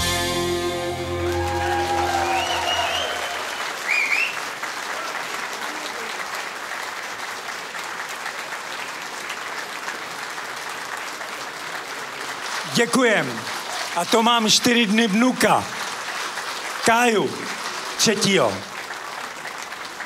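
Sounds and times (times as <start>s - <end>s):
band final chord ringing: 0.0s - 2.2s
crowd calling out: 0.0s - 4.3s
audience applauding: 0.0s - 20.0s.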